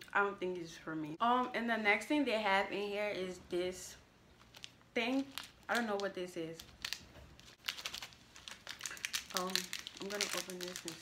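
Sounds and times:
plastic candy packet crinkling: 0:04.4 - 0:11.0.

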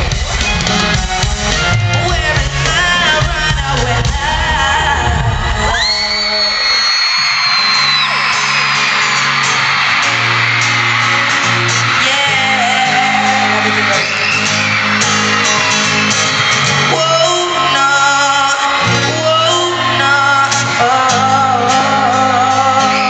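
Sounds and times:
crowd screaming: 0:00.0 - 0:23.0
live pop band playing: 0:00.0 - 0:23.0.

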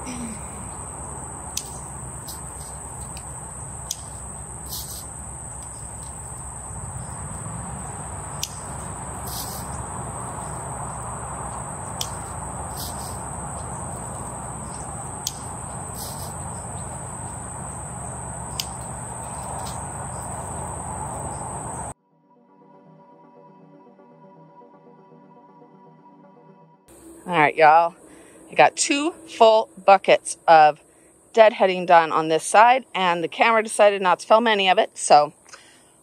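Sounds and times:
insects chirring: 0:00.0 - 0:22.0, 0:26.9 - 0:36.0
hand pruners snipping: 0:01.5 - 0:06.4, 0:07.8 - 0:20.6.

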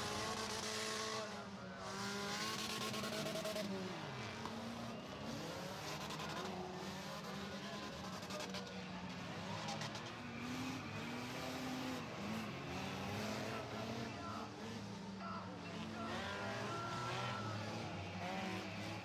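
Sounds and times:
car engines revving: 0:00.0 - 0:19.0.

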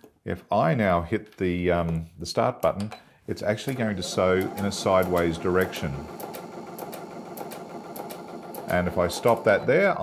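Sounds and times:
sewing machine running: 0:03.9 - 0:09.7.

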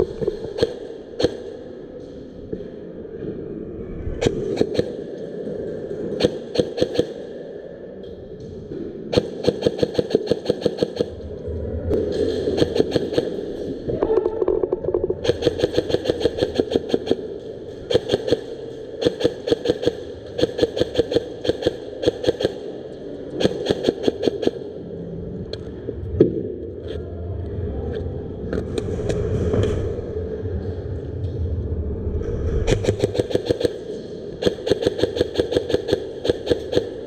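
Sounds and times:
airsoft guns firing rapid bursts: 0:06.2 - 0:07.2, 0:09.1 - 0:11.1, 0:15.2 - 0:17.2, 0:17.9 - 0:22.6, 0:23.4 - 0:24.6, 0:32.7 - 0:37.0.

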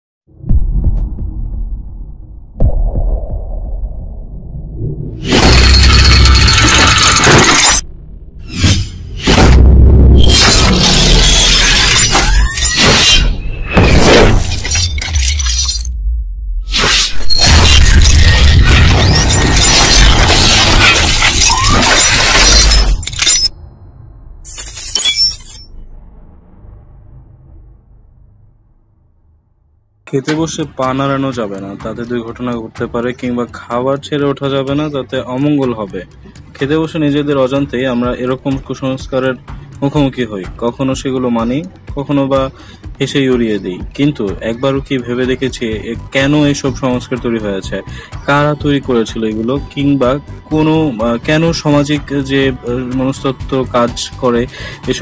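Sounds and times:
deep hits with low rumble: 0:00.3 - 0:05.3, 0:07.8 - 0:10.2
deep bass: 0:00.3 - 0:06.5, 0:07.8 - 0:11.2, 0:15.9 - 0:16.7, 0:25.8 - 0:29.6
glass shattering crash: 0:05.2 - 0:07.8, 0:10.2 - 0:15.9, 0:16.8 - 0:23.5, 0:24.4 - 0:25.8.

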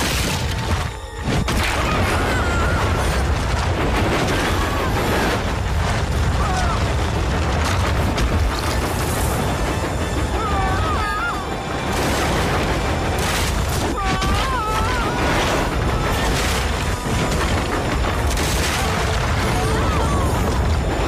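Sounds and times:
continuous low rumble: 0:00.0 - 0:21.0
dramatic background music: 0:00.0 - 0:21.0.

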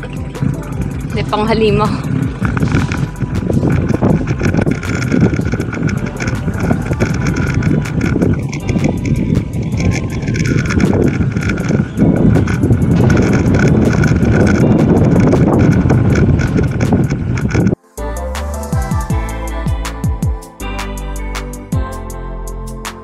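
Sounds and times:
bike rattling knocks: 0:00.0 - 0:17.8
tyres rumbling on dirt road: 0:00.0 - 0:17.8
wind: 0:00.0 - 0:23.0.

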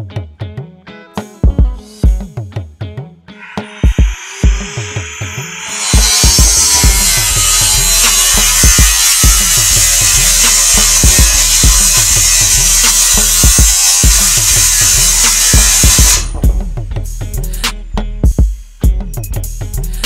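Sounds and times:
background music with drum beat: 0:00.0 - 0:20.0
angle grinder on steel: 0:03.4 - 0:16.5.

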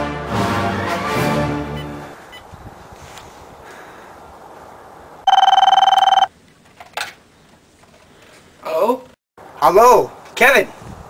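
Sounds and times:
landline telephone ringing: 0:05.3 - 0:06.3.

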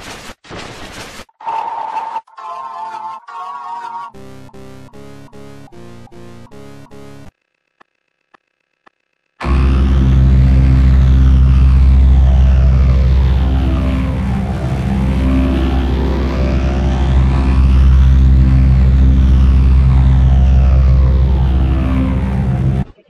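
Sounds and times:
distorted bass-heavy flanged audio: 0:04.2 - 0:07.3, 0:09.4 - 0:22.9.

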